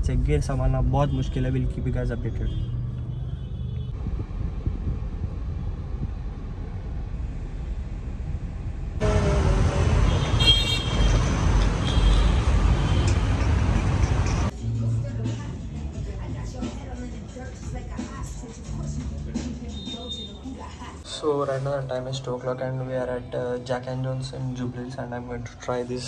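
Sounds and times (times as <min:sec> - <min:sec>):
road rumble inside a car: 0:00.0 - 0:09.0
street traffic noise: 0:00.0 - 0:26.0.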